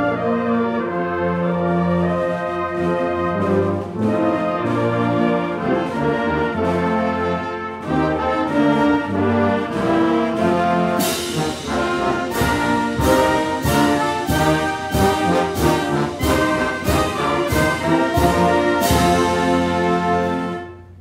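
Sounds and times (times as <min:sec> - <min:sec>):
brass band playing anthem: 0:00.0 - 0:21.0.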